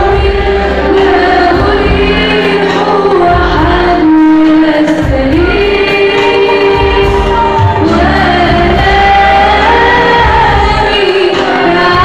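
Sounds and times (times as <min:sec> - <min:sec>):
group singing a hymn: 0:00.0 - 0:12.0
musical accompaniment: 0:00.0 - 0:12.0.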